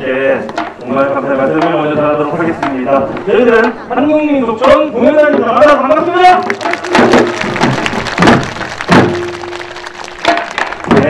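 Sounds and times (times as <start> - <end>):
drum strikes: 0.5 - 3.0, 6.4 - 11.0.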